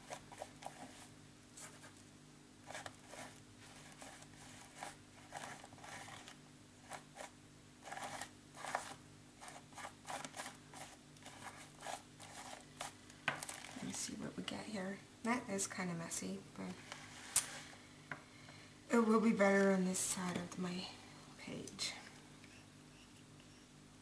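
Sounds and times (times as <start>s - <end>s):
faint steady hum: 0.0s - 24.0s
paint scraping through stencil: 2.6s - 13.0s.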